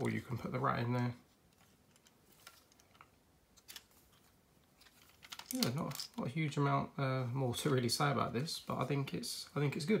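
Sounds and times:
plastic bricks clicking: 1.9s - 6.2s.

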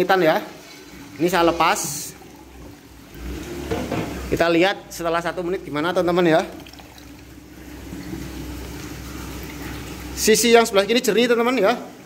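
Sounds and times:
water pouring and splashing into tank: 0.0s - 12.0s.

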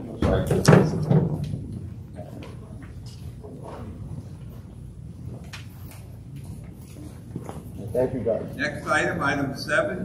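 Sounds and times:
faint knocks and shuffles: 1.8s - 8.0s.

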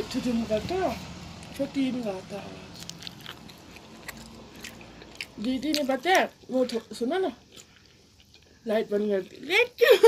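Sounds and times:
person chewing crunchy food: 2.4s - 9.8s.

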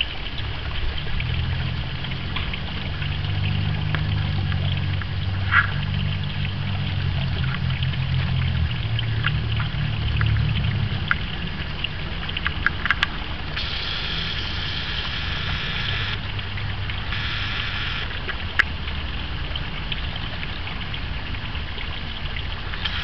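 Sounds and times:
fountain water splashing: 0.0s - 23.0s.

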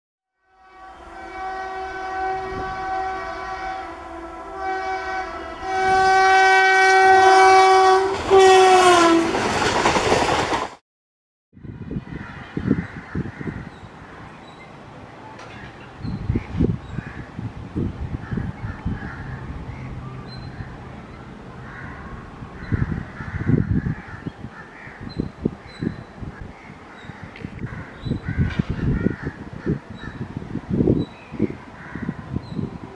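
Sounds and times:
locomotive horn blasts: 0.4s - 9.4s
train coaches rushing and rattling: 8.1s - 10.8s, 13.9s - 16.8s
harsh bird calls: 18.2s - 30.3s.

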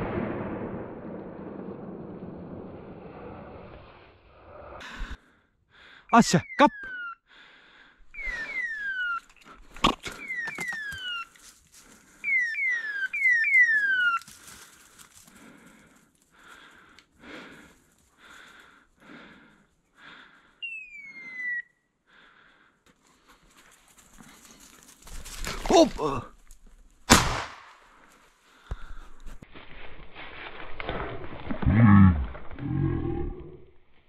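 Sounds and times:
beeper collar beeping: 6.1s - 7.2s, 20.6s - 21.7s
falling whistles: 6.1s - 7.2s, 8.1s - 9.5s, 10.1s - 11.4s, 12.2s - 14.3s, 20.6s - 21.9s.

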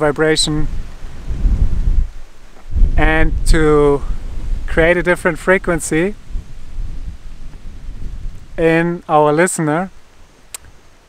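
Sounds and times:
wind buffeting microphone: 0.0s - 9.0s.

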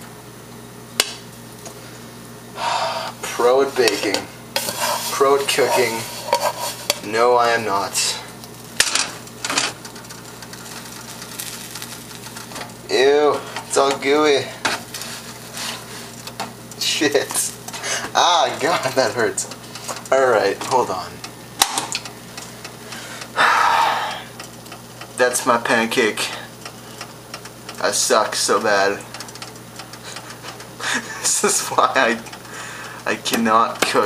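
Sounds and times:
steady low hum: 0.0s - 34.0s
steam hissing off frying pan: 4.4s - 7.0s, 9.5s - 16.2s
scraping rustles: 4.6s - 7.0s, 14.6s - 16.3s.

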